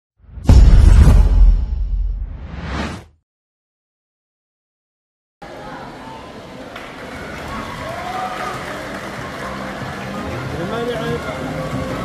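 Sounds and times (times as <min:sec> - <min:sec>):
spectators cheering indoors: 0:05.4 - 0:12.0.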